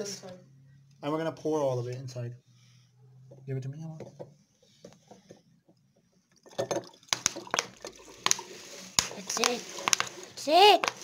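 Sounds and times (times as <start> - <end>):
liquid pouring into a glass: 6.4 - 8.9.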